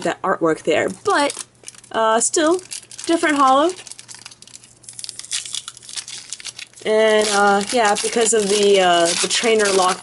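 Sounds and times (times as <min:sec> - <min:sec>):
foil pack tearing and crinkling: 0:01.1 - 0:10.0.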